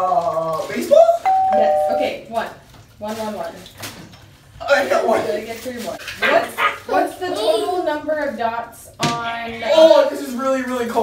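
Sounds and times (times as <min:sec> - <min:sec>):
two-note electronic chime: 0:01.3 - 0:02.3.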